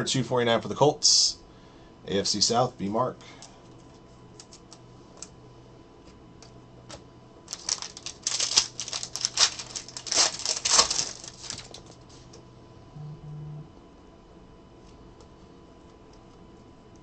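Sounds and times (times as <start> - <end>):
foil wrapper tearing and crinkling: 7.5 - 12.0.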